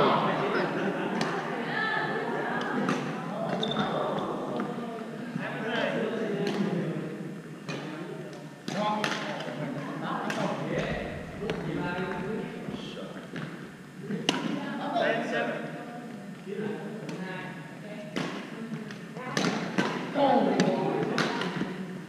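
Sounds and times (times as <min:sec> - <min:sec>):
people talking in gym hall: 0:00.0 - 0:22.0
rackets striking shuttlecock: 0:18.2 - 0:21.6.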